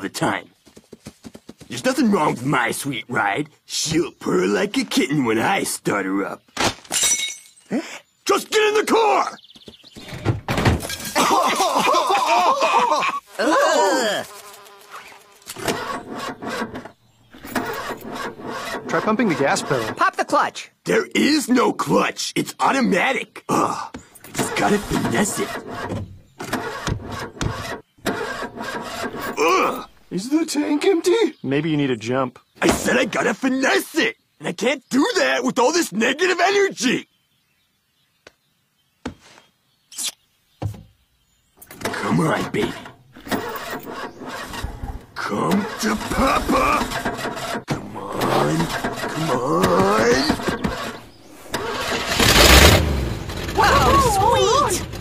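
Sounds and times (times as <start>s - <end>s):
person whooping: 11.2s - 14.3s, 53.6s - 54.5s
car engine cranking and sputtering: 15.5s - 20.1s, 24.3s - 29.9s, 41.7s - 55.0s.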